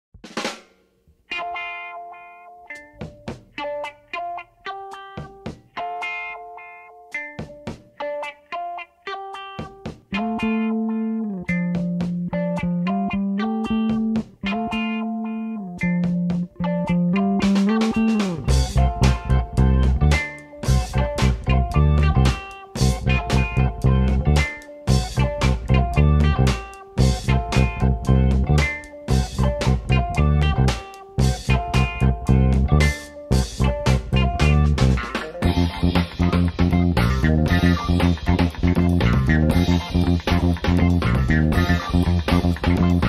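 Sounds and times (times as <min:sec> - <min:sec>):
drums with fill: 0:00.2 - 0:01.0, 0:02.9 - 0:03.6, 0:05.2 - 0:05.7, 0:07.4 - 0:07.9, 0:09.6 - 0:10.1, 0:11.6 - 0:12.3, 0:17.4 - 0:21.6, 0:22.2 - 0:43.0
clean plucked guitar notes: 0:01.3 - 0:43.0
electric bass: 0:10.1 - 0:43.0.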